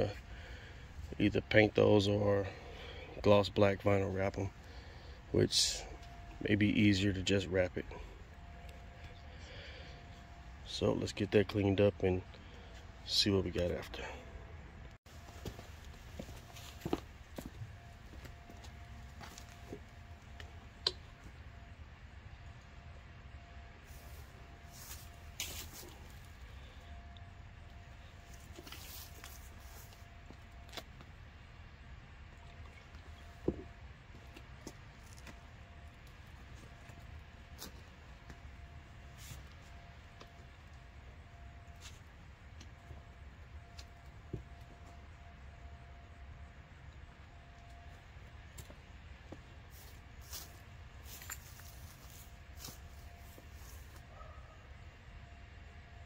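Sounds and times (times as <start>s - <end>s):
faint outdoor rumble: 0.0s - 56.0s
boots scuffing on concrete: 15.2s - 20.5s, 24.0s - 26.0s.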